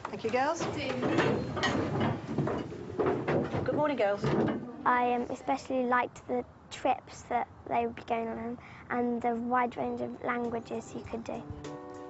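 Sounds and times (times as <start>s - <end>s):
knocks and scrapes: 0.1s - 4.7s.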